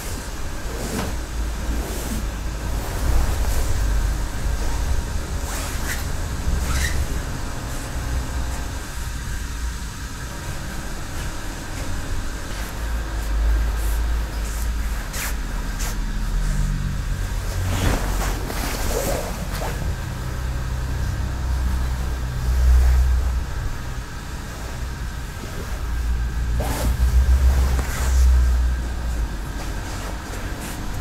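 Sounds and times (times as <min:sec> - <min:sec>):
feet sliding on tatami mats: 0:00.1 - 0:03.9, 0:17.5 - 0:20.0, 0:25.6 - 0:31.0
fabric rustling: 0:11.0 - 0:20.7, 0:25.1 - 0:31.0
low rumble: 0:12.8 - 0:31.0.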